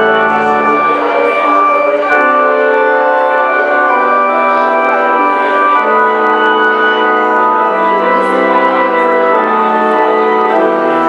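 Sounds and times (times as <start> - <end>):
organ playing sustained chords: 0.0 - 11.0.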